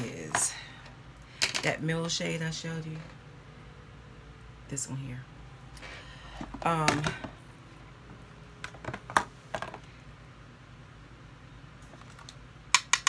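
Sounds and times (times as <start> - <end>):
makeup brush and palette clicking: 12.1 - 13.0.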